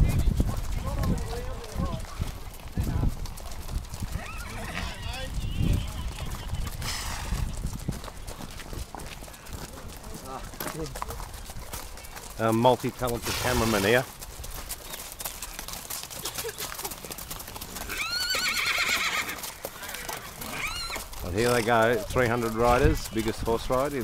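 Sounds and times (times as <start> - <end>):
riders' voices: 0.0 - 3.2, 4.3 - 7.6, 9.4 - 14.1, 19.8 - 24.0
hooves clip-clopping on dirt: 0.0 - 24.0
horse whinnying: 4.0 - 7.5, 17.4 - 21.6.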